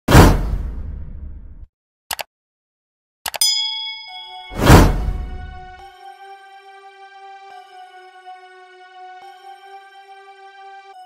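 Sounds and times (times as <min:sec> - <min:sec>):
notification bell ding: 0:03.4 - 0:05.7.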